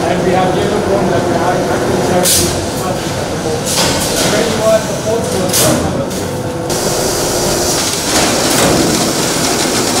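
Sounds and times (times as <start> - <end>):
conveyor and bagging machinery: 0.0 - 10.0.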